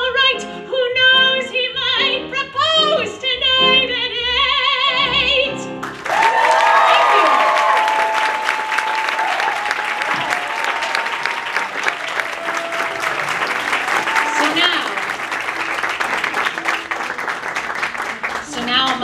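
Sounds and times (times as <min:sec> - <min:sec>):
audience applauding: 0:05.8 - 0:19.0.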